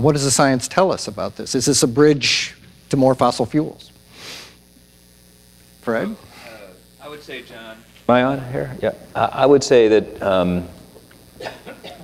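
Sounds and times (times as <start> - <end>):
low mains hum: 0.0 - 12.0
short breathy hiss: 4.0 - 4.8, 6.2 - 6.9.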